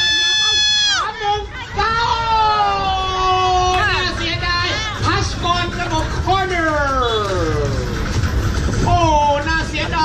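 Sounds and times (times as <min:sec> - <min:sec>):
commentator exclaiming: 0:00.0 - 0:07.7
steady low rumble: 0:00.5 - 0:10.0.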